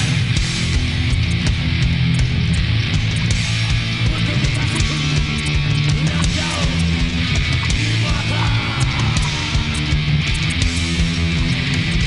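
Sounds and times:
bass guitar: 0:00.0 - 0:12.0
drums: 0:00.0 - 0:12.0
electric guitar: 0:00.0 - 0:12.0.

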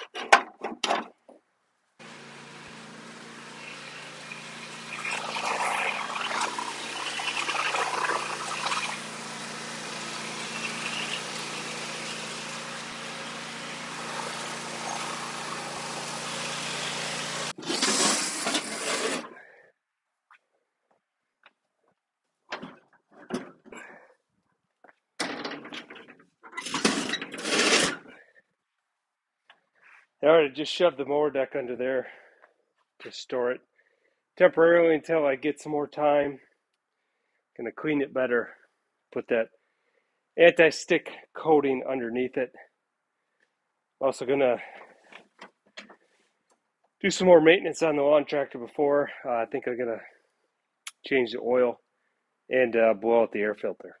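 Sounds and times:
lawn tractor engine running: 0:02.0 - 0:19.2
mower deck scraping on concrete: 0:02.0 - 0:19.5, 0:25.8 - 0:28.2.

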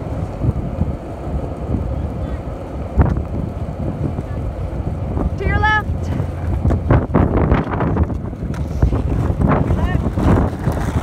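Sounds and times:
skateboard wheels rolling on asphalt: 0:00.0 - 0:11.0
wind buffeting microphone: 0:00.0 - 0:11.0.

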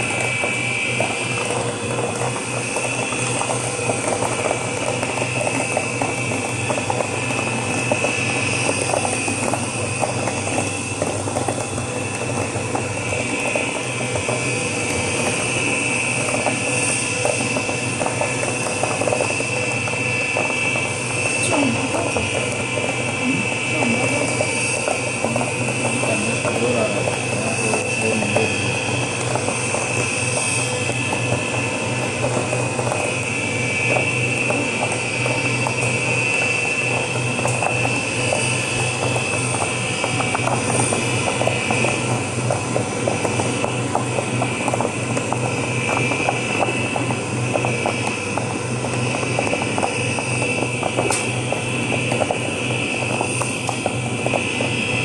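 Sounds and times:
mill motor hum with whine: 0:00.0 - 0:55.0
slurry recirculating: 0:00.0 - 0:55.0.

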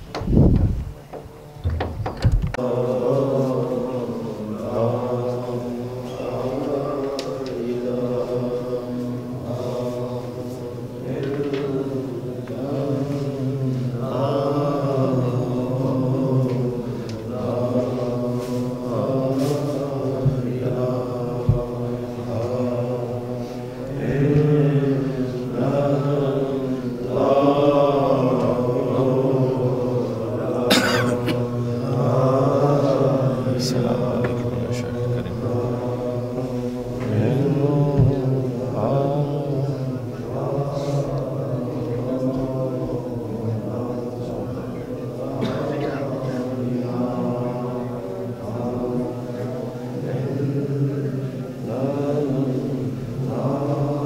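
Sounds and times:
male devotional chanting: 0:02.5 - 0:54.0.

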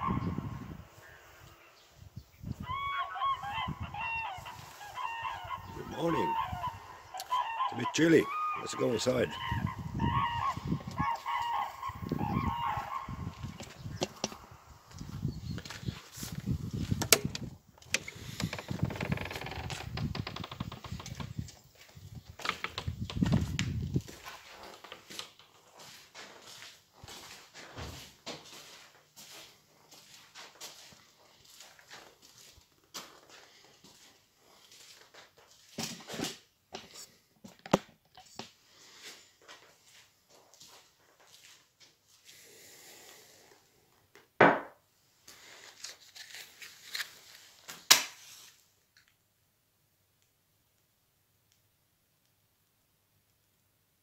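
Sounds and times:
rooster crowing: 0:02.5 - 0:13.6
indoor scuffs: 0:23.2 - 0:37.1.

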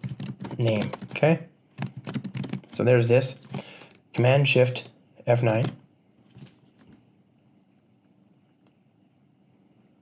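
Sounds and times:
faint soft sounds: 0:02.8 - 0:10.0.

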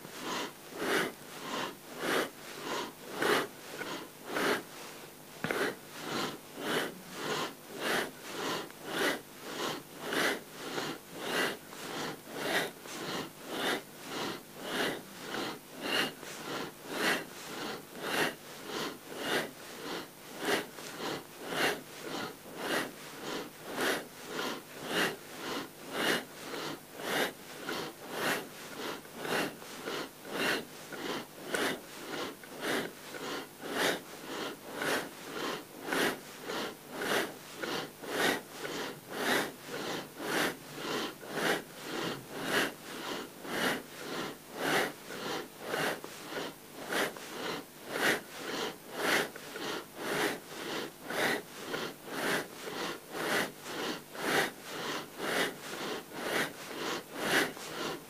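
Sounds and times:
forceful breathing through the nose: 0:00.0 - 0:58.0.

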